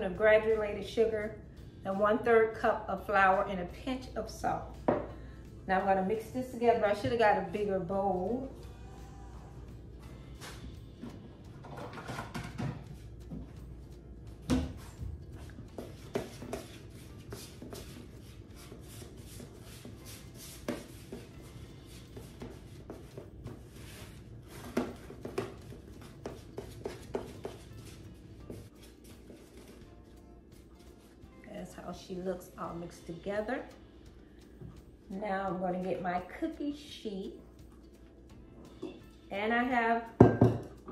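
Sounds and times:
background music: 0.0s - 40.9s.

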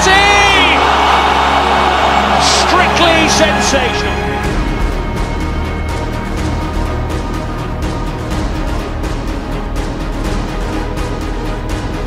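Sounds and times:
commentator shouting: 0.0s - 4.4s
stadium crowd cheering: 0.0s - 6.1s
background music: 0.0s - 12.0s.

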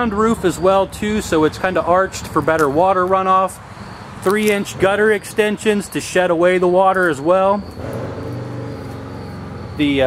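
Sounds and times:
speech: 0.0s - 3.6s, 4.2s - 7.6s, 9.8s - 10.0s.

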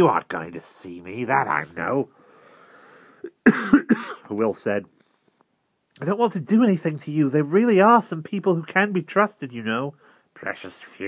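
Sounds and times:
faint breathy hiss: 0.4s - 3.5s, 4.2s - 6.1s, 9.6s - 11.0s
man coughing: 3.2s - 4.3s.

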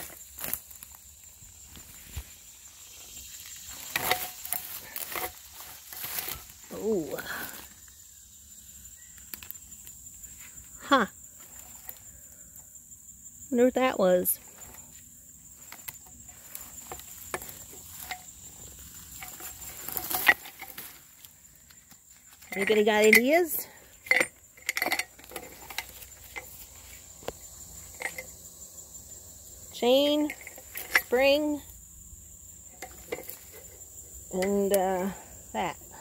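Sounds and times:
brush and twigs rustling: 0.0s - 12.7s, 14.0s - 36.0s.

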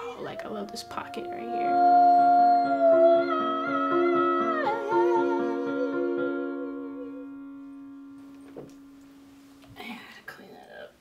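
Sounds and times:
sustained instrumental chords: 0.2s - 9.6s.

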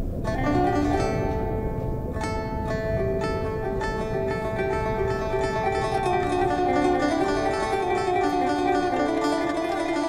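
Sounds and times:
plucked string instrument notes: 0.0s - 10.0s
steady low rumble: 0.0s - 10.0s.

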